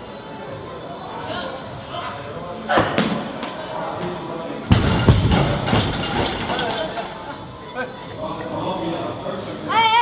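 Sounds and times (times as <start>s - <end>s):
murmur of a large hall: 0.0s - 10.0s.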